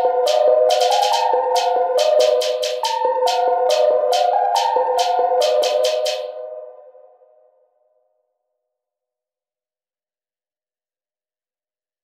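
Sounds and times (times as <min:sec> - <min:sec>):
held synthesizer chord: 0:00.0 - 0:07.7.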